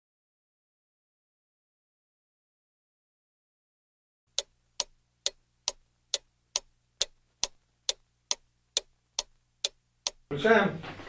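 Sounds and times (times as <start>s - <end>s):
clock ticking: 4.3s - 10.3s
faint low hum: 4.3s - 11.0s.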